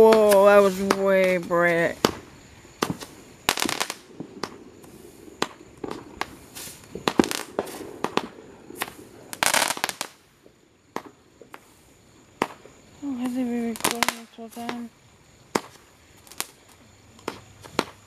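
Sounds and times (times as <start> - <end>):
fireworks crackling: 0.0 - 18.0
fireworks popping and banging: 0.0 - 18.0.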